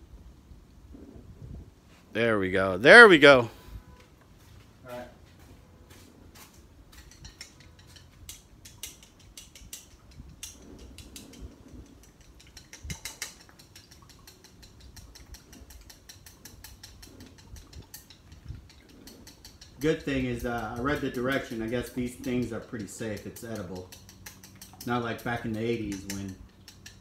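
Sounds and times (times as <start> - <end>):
chopsticks clicking on ceramic bowl: 7.0 - 27.0.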